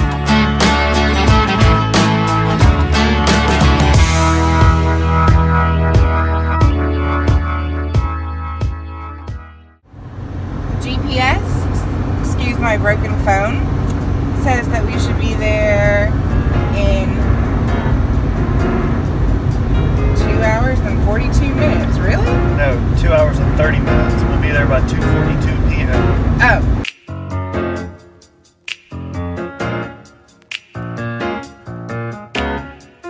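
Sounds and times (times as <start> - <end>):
music: 0.0 - 9.8, 14.4 - 33.0
car road noise rumble: 9.8 - 26.9
voices: 10.8 - 16.1, 16.7 - 17.2, 20.2 - 26.8.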